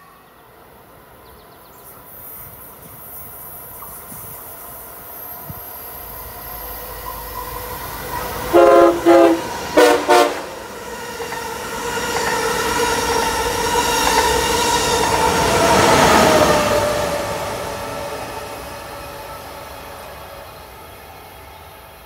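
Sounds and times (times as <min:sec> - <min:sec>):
train rushing past: 0:00.0 - 0:22.0
train horn blasts: 0:08.3 - 0:10.6.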